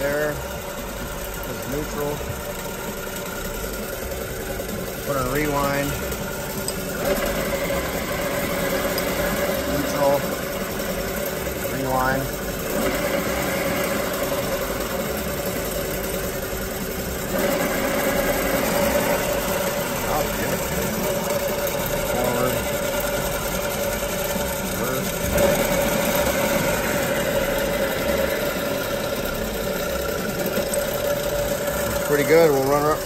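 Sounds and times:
transmission mechanical whine: 0.0s - 33.0s.

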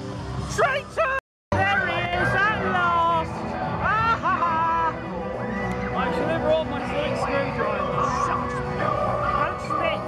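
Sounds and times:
loud background music: 1.5s - 10.0s.

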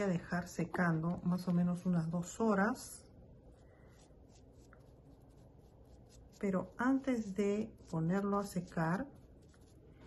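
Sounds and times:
paintbrush scratching on canvas: 0.0s - 10.0s.

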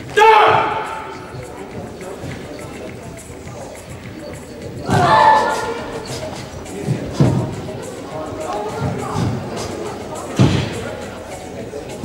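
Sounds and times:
echoing voices: 0.0s - 12.0s
faint music: 0.0s - 12.0s
kiai shouts: 0.1s - 1.3s.

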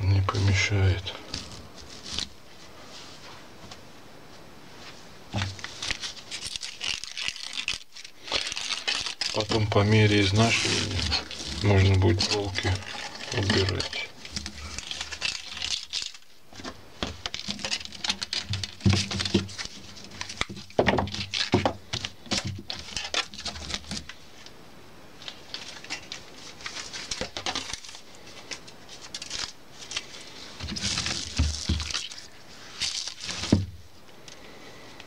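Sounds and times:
broom bristles rustling and scraping: 0.0s - 24.5s, 25.1s - 34.0s.

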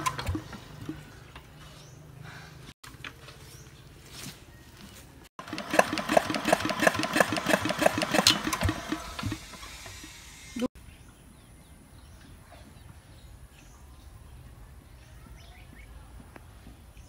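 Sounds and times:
small engine chugging: 5.4s - 10.7s.

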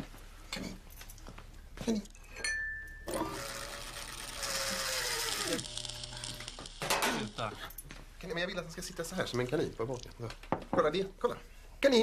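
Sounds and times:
small electric motor running: 3.2s - 7.6s.

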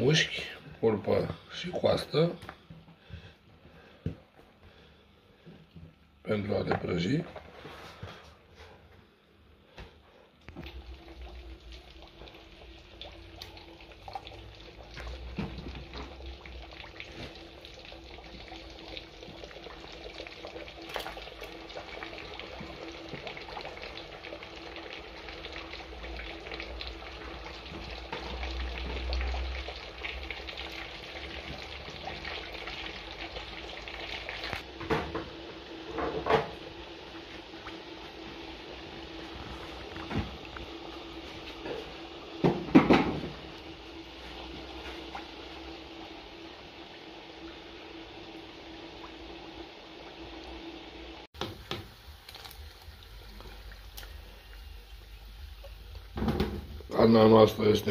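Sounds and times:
pork sizzling in hot lard: 10.5s - 57.9s.

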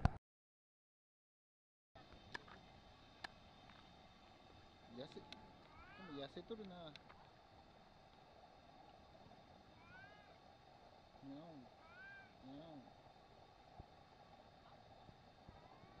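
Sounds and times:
cat meowing faintly: 5.2s - 6.4s, 9.8s - 10.4s, 11.7s - 12.5s, 15.5s - 16.0s.

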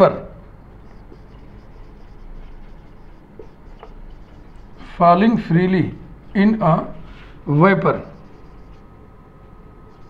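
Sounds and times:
marker scratching on whiteboard: 0.7s - 5.6s, 6.9s - 8.9s
marker tip ticking on board: 0.9s - 4.8s.

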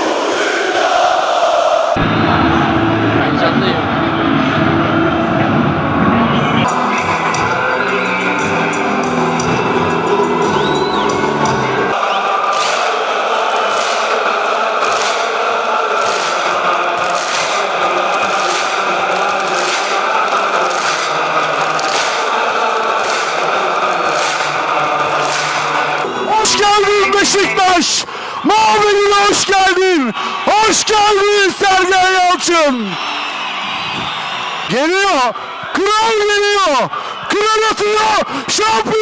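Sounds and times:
stadium crowd chanting: 0.0s - 35.9s
backing music: 2.0s - 29.3s.

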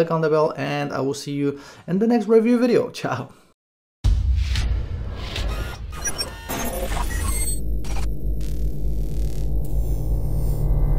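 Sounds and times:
glitchy mechanical clicks: 5.2s - 10.9s
deep low drone: 7.4s - 10.9s.

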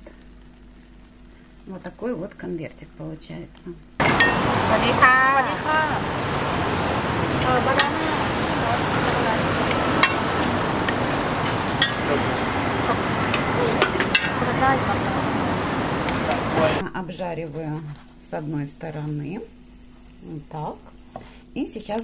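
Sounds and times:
dough sizzling in oil: 4.0s - 16.8s.

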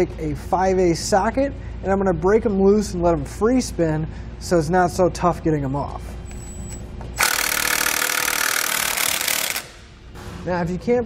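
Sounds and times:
impact wrench hammering: 7.2s - 10.4s.

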